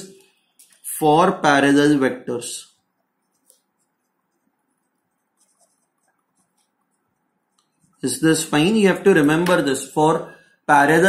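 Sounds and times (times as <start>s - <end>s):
pen scratching on paper: 3.0s - 8.0s.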